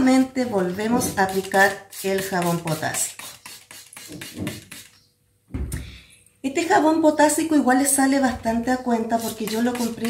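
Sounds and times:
spray bottle hissing bursts: 0:00.8 - 0:05.0.

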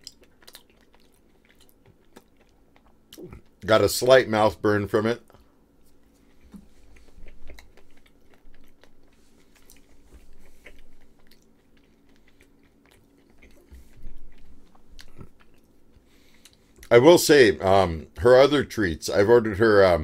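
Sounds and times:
man chewing with mouth closed: 0:00.0 - 0:03.7, 0:05.3 - 0:16.9.

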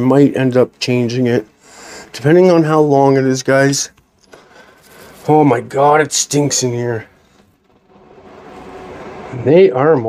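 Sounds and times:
low hum: 0:04.0 - 0:10.0.

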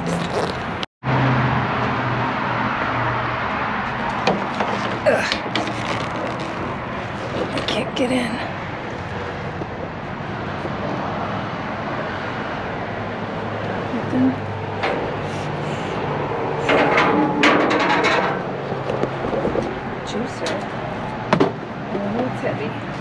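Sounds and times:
rustling and knocks in dumpster: 0:04.0 - 0:07.8.

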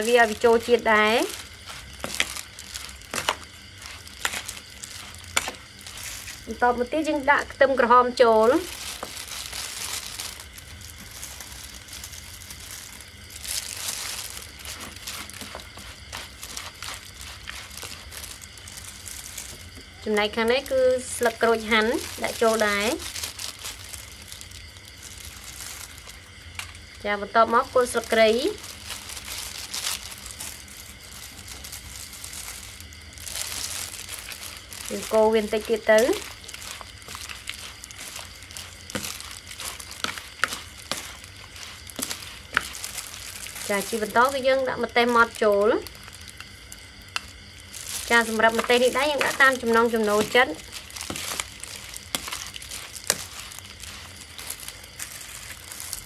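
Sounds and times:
wet rustling of food mixed by hand: 0:00.0 - 0:56.0.

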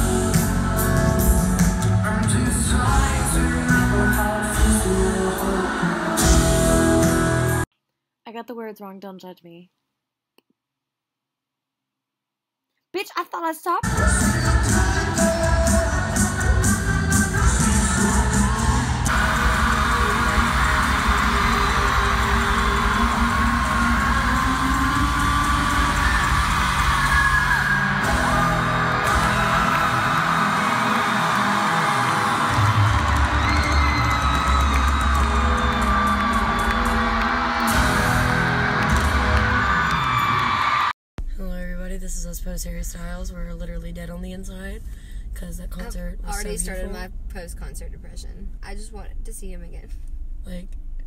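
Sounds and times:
crowd whooping and singing along: 0:00.0 - 0:07.6, 0:13.9 - 0:40.9
live pop-rock band: 0:00.0 - 0:07.6, 0:13.8 - 0:40.7.

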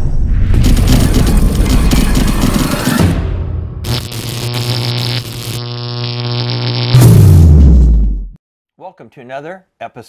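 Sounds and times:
synthesized electric buzz: 0:03.8 - 0:07.7.

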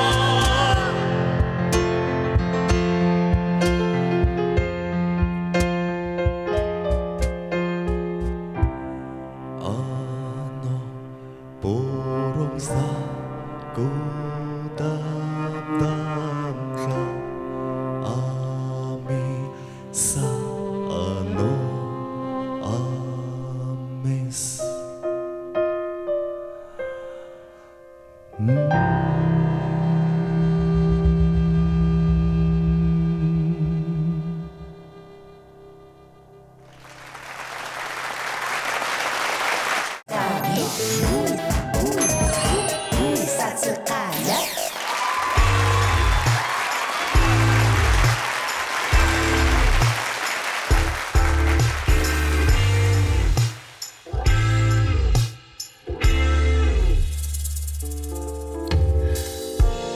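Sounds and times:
man singing: 0:00.0 - 0:02.0, 0:09.5 - 0:17.3, 0:17.9 - 0:25.0, 0:40.1 - 0:44.2
band accompaniment: 0:00.0 - 0:09.0, 0:45.0 - 0:57.2, 0:58.1 - 0:59.9
audience applause: 0:36.7 - 0:40.1, 0:44.7 - 0:53.9
held notes of song: 0:40.1 - 0:44.7.

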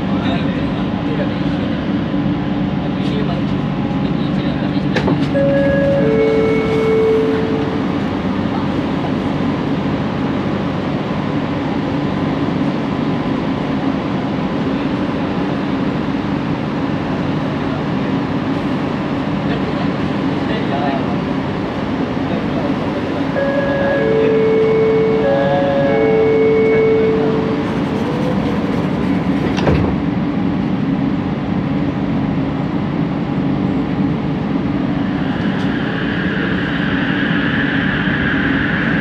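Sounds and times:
station and cabin noise: 0:00.0 - 0:39.0
train motor humming: 0:00.0 - 0:39.0
two-note falling door chime: 0:05.4 - 0:07.6.

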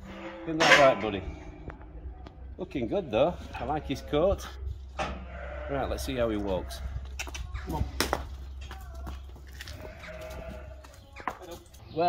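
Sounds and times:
low steady rumble: 0:01.0 - 0:09.4
sheep bleating: 0:03.3 - 0:04.5, 0:05.2 - 0:07.0, 0:09.6 - 0:10.9.

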